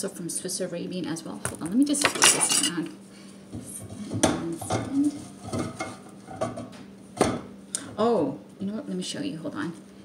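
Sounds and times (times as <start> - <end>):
kitchen utensils clicking: 2.0 - 2.8.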